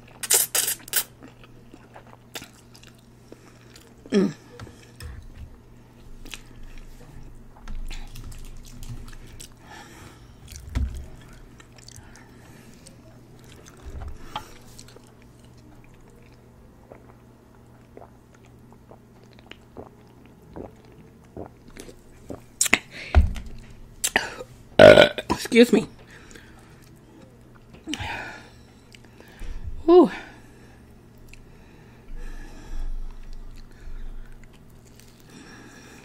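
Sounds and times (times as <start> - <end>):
chewing and biting food: 0.0 - 4.1, 6.0 - 22.8, 33.2 - 35.4
faint low hum: 0.0 - 36.0
sipping from a can: 0.2 - 1.1.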